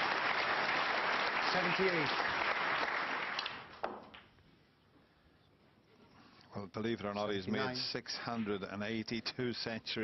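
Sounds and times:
audience applauding: 0:00.0 - 0:03.7.

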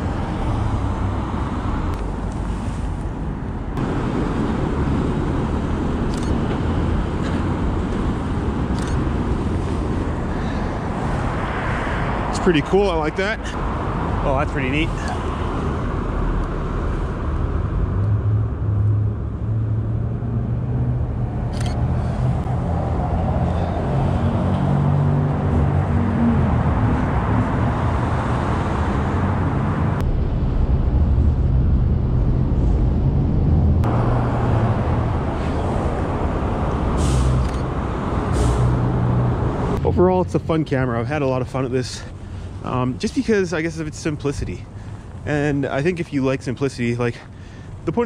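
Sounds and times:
cars passing: 0:00.0 - 0:48.0
rumble of engines and tyres: 0:00.0 - 0:48.0.

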